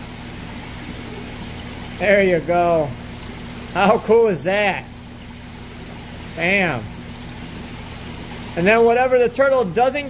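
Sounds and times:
aquarium pump water rush and hum: 0.0s - 10.0s.

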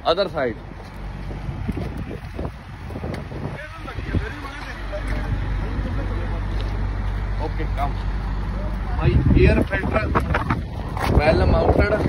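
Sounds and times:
truck engine idling: 0.0s - 12.0s
wind buffeting microphone: 0.6s - 7.4s, 8.4s - 12.0s
faint voices: 3.3s - 12.0s.

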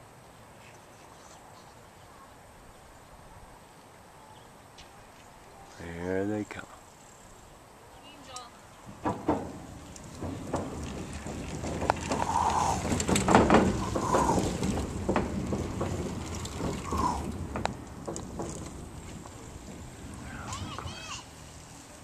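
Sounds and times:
bicycle tyres rumbling on wooden boards: 8.6s - 22.0s
knocks and rattles: 8.8s - 21.0s.

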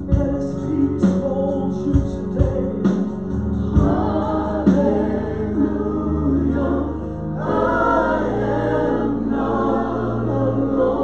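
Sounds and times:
keyboard chords: 0.0s - 11.0s
voices singing together: 3.6s - 11.0s.

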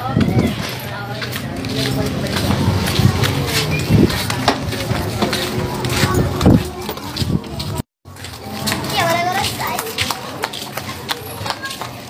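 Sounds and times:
flip-flop footsteps on concrete: 0.0s - 12.0s
voices in the street: 0.0s - 12.0s.

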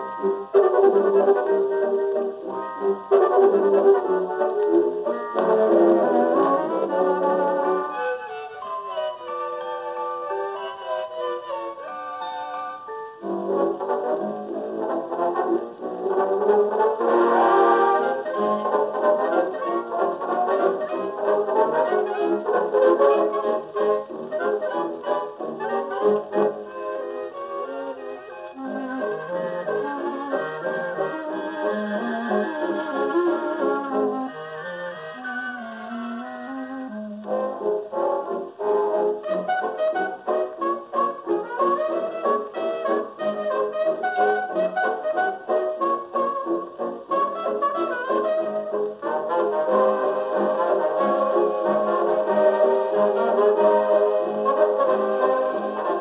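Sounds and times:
dance band record on phonograph: 0.0s - 56.0s.

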